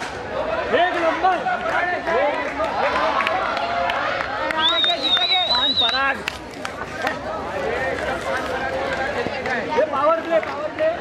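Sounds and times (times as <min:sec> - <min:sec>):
voices shouting and cheering: 0:00.1 - 0:11.0.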